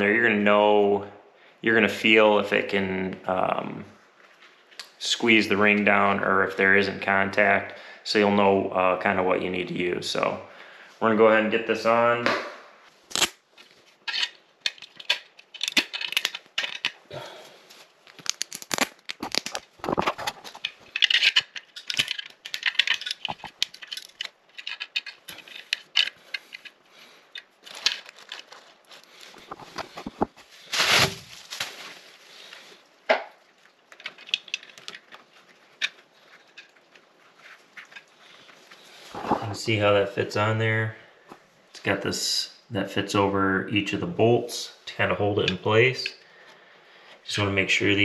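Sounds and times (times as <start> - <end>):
plastic crinkling: 13.0 - 39.5
small metal clicks and scrapes: 13.6 - 17.1, 18.1 - 30.3, 33.5 - 39.4.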